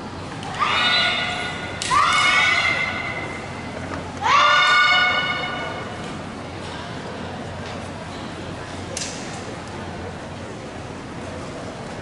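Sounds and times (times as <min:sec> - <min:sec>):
high-pitched shouts: 0:00.5 - 0:03.5, 0:04.2 - 0:05.8.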